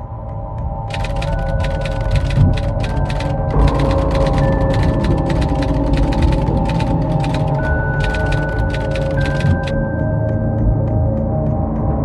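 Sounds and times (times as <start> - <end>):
dark ominous background music: 0.0 - 12.0
typewriter key clicks: 0.9 - 9.8.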